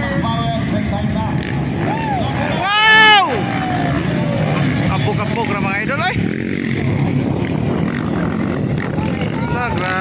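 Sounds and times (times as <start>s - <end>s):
dirt bike engines rumbling: 0.0s - 10.0s
loud high whoop: 1.8s - 4.4s.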